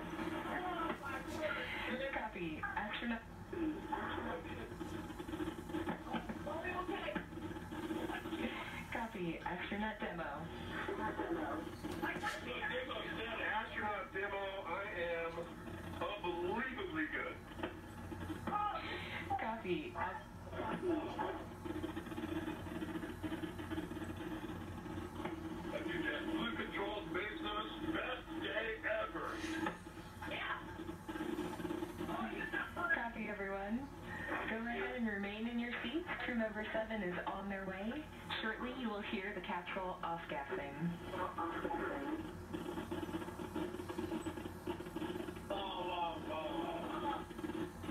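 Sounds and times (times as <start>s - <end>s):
radio voices through speaker: 0.0s - 47.9s.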